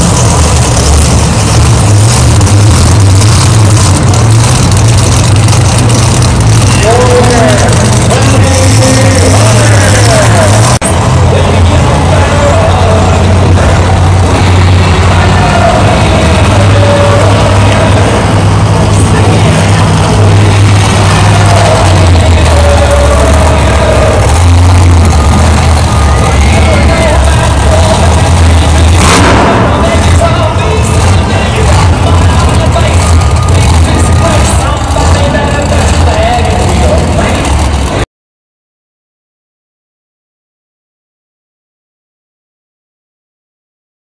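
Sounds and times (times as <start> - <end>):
monster truck engine revving: 0.0 - 38.0
announcer over loudspeakers: 6.6 - 38.0.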